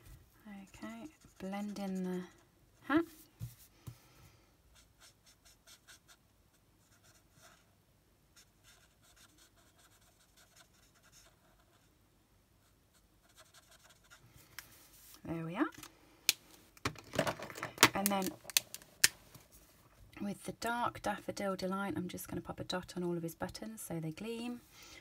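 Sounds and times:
marker scratching on cardstock: 8.4s - 11.7s.

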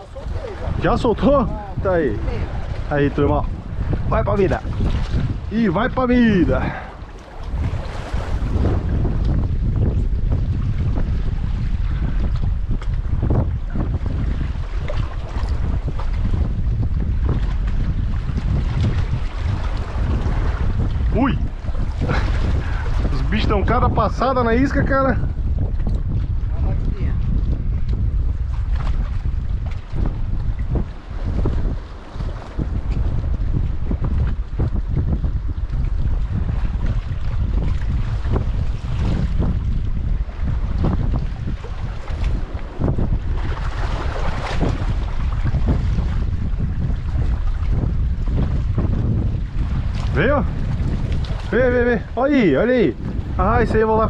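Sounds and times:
wind buffeting microphone: 0.0s - 54.0s
water washing against rocks: 40.4s - 48.8s.

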